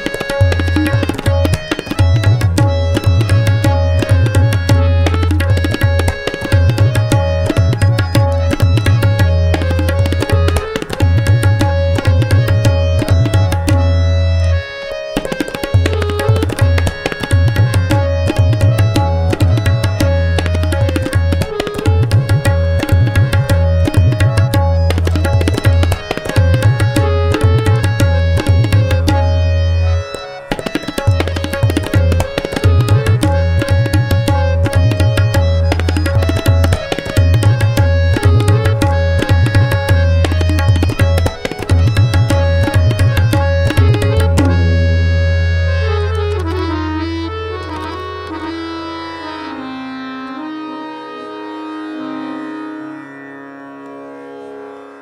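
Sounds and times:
tabla drumming: 0.0s - 48.0s
harmonium melody: 0.0s - 55.0s.

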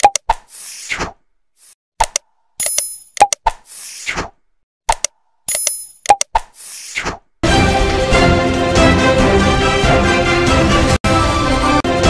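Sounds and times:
quick clicks: 2.0s - 4.2s, 4.9s - 7.2s.

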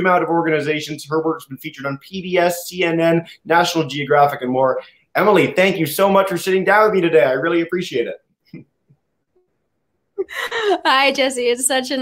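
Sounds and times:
woman laughing: 10.2s - 11.2s
woman speaking: 10.2s - 12.0s.

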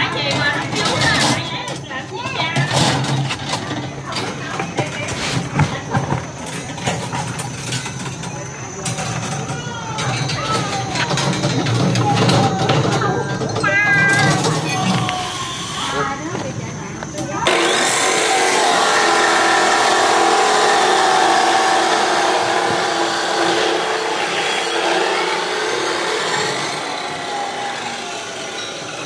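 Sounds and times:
workers talking indistinctly: 0.0s - 29.0s.

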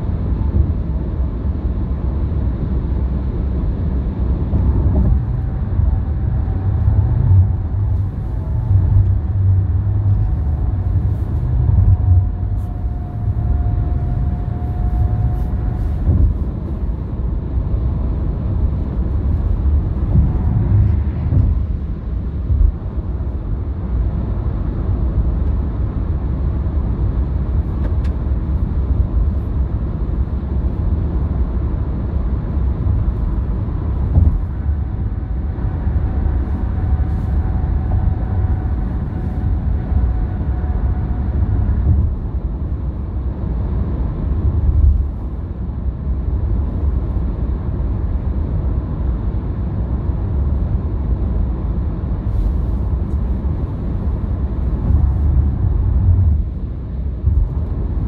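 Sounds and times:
tyre and road noise rumble: 0.0s - 58.0s.

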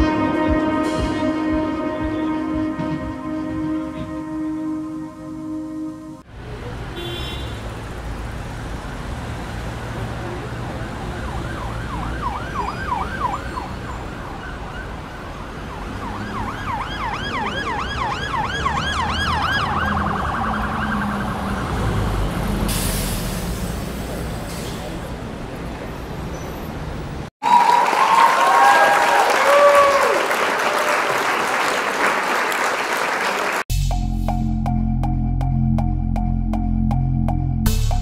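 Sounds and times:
road traffic rumble: 0.8s - 27.3s
siren yelping: 10.4s - 21.9s
short burst of hiss: 22.7s - 23.8s.

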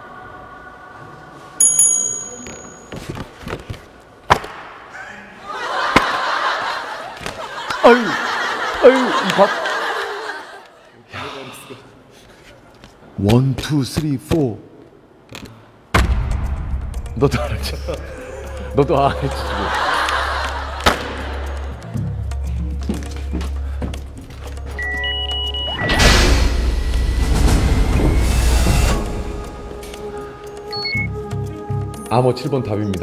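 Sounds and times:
tense background music: 16.0s - 32.1s
short electronic beeps: 24.8s - 26.1s, 30.7s - 31.1s.

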